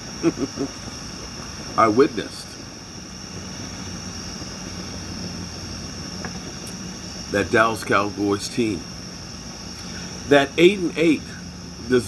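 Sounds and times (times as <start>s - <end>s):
gas flame hissing: 0.0s - 12.0s
night insects droning: 0.0s - 12.0s.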